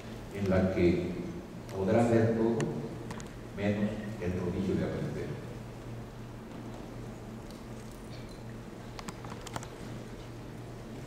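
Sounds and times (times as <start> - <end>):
steady low hum: 0.0 - 11.0
laptop keyboard clicks: 9.0 - 9.7.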